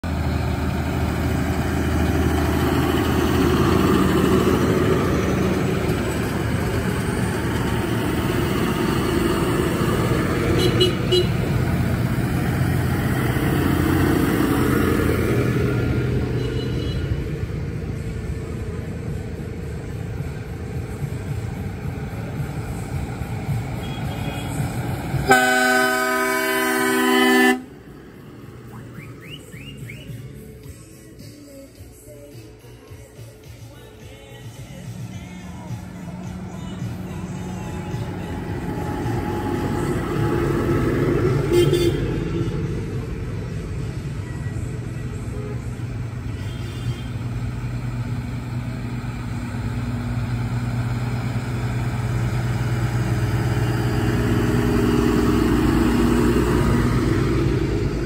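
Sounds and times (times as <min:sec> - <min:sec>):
tractor diesel engines rumbling: 0:00.0 - 0:58.0
loud horn blast: 0:10.4 - 0:11.5, 0:23.8 - 0:27.8, 0:41.2 - 0:42.7, 0:46.3 - 0:47.3.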